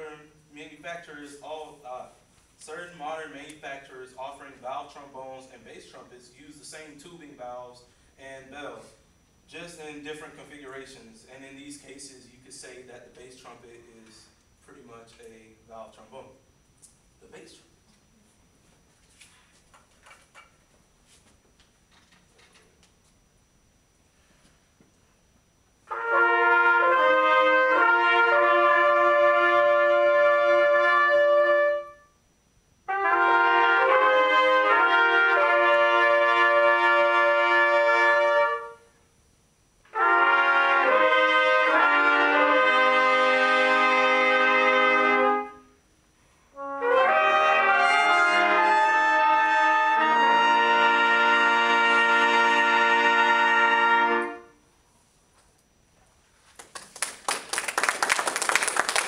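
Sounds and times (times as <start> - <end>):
trumpet ensemble playing chords: 25.8 - 32.1, 32.8 - 38.9, 39.9 - 45.8, 46.5 - 54.6.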